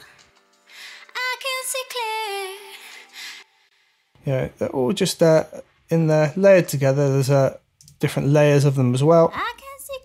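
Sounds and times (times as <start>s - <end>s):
woman singing with reverb: 1.1s - 3.2s.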